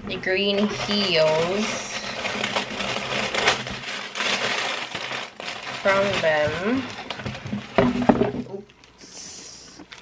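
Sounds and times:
packing wrapping crinkling: 0.4 - 9.0.

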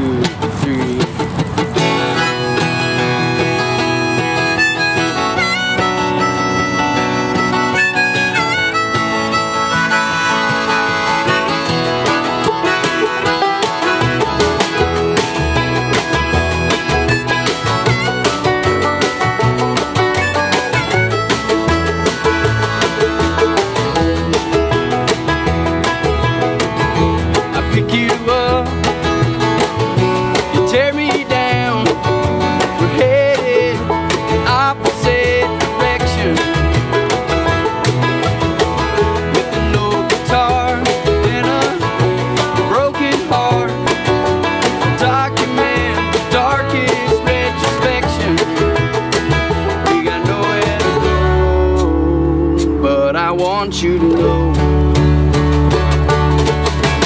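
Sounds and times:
bluegrass band playing: 0.0 - 57.0.

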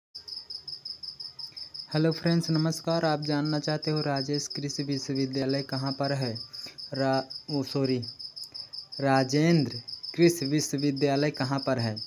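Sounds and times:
insect chirping trill: 0.2 - 12.0.

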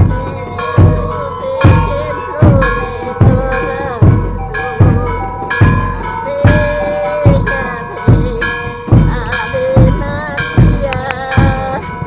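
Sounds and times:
big drum beating: 0.0 - 12.0
melody of held notes: 0.0 - 12.0.

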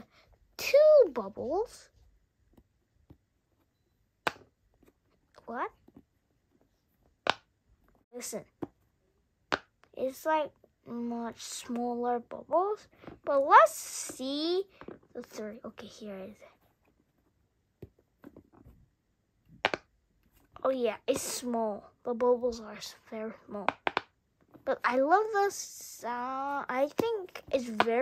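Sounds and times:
pop-it toy bubbles popping: 23.6 - 24.2.

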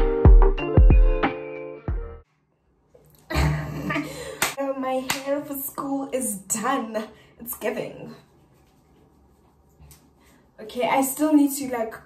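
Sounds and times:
hand claps: 4.4 - 5.3
young woman talking: 4.6 - 8.3, 10.6 - 12.0.

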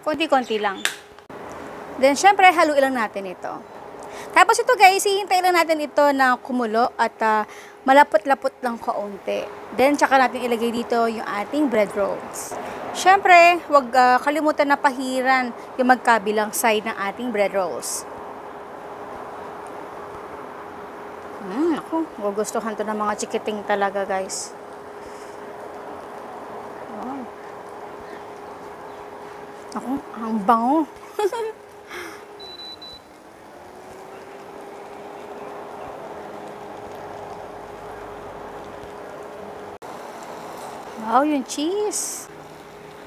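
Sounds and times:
constant low hum: 0.0 - 43.0
bread sizzling in pan: 32.3 - 43.0.

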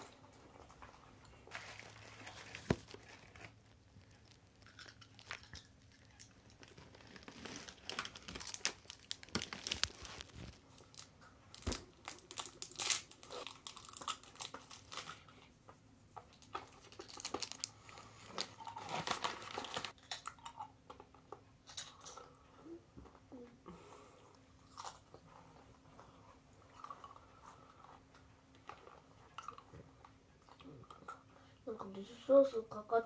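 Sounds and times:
plastic snack bags crinkling: 1.3 - 15.2, 16.5 - 20.6
foil wrappers crinkling: 1.4 - 15.2, 16.6 - 20.3
crunchy snacks being chewed: 3.2 - 11.2, 12.0 - 15.1, 16.4 - 22.3, 24.6 - 25.3.

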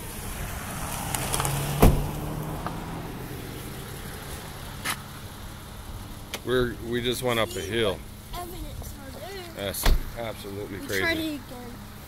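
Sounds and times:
tyres rumbling on road: 0.0 - 12.0.

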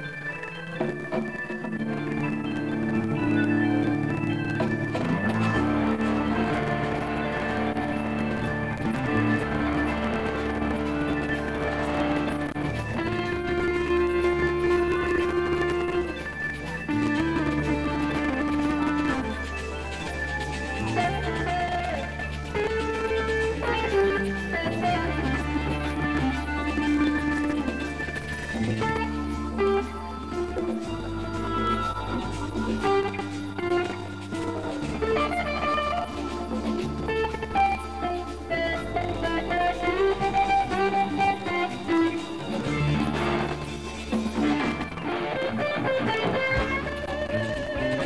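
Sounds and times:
electric guitar lead: 0.0 - 48.0
sustained bass line: 1.8 - 48.0.

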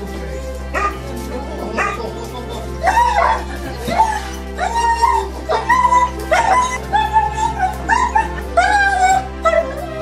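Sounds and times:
background music: 0.0 - 10.0
dog yelping: 2.8 - 10.0.

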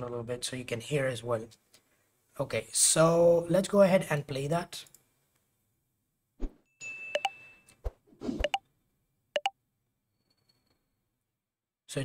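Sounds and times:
computer swish: 8.2 - 8.6.

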